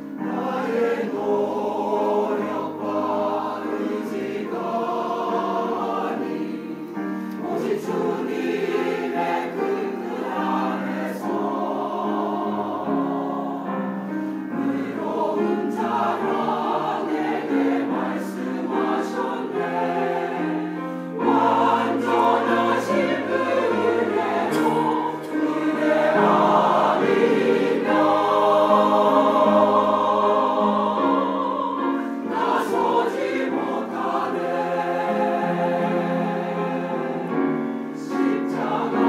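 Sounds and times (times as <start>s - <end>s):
choir singing in harmony: 0.0s - 39.0s.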